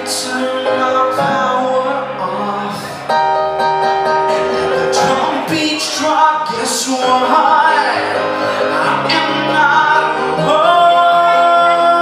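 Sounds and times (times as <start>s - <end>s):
sustained piano chords: 0.0s - 12.0s
man singing a long note: 4.5s - 12.0s.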